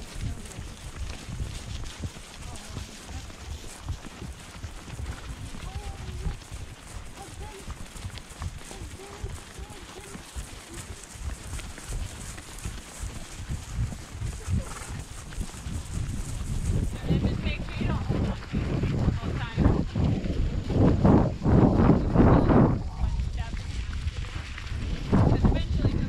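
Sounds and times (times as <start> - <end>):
horse hoofbeats on grass: 0.0 - 26.0.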